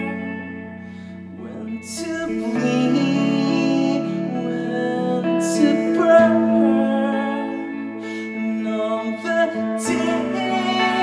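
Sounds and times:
electric guitar chords ringing: 0.0 - 11.0.

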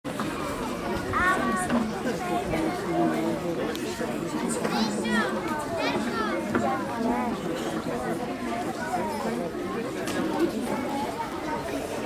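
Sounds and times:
murmur of voices: 0.1 - 12.0.

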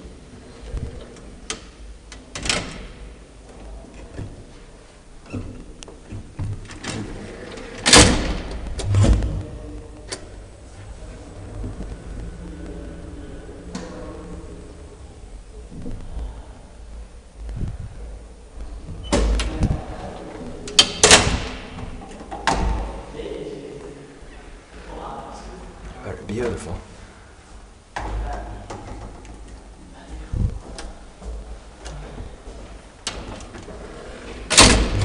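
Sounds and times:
elevator door clicks and knocks: 1.5 - 3.2, 5.3 - 9.4, 20.7 - 23.0, 34.5 - 35.0
elevator door clatter: 5.2 - 9.4, 20.6 - 23.1, 33.0 - 35.0.

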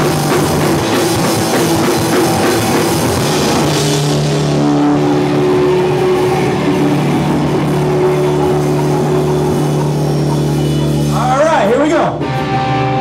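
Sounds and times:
punk rock band playing live: 0.0 - 13.0.

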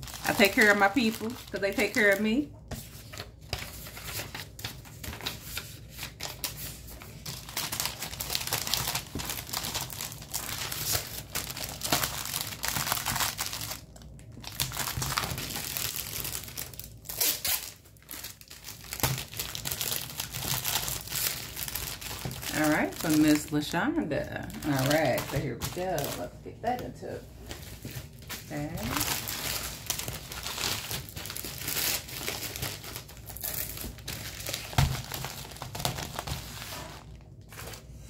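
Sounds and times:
cellophane sleeve crinkling: 0.0 - 23.7, 24.4 - 26.8, 27.4 - 38.0.

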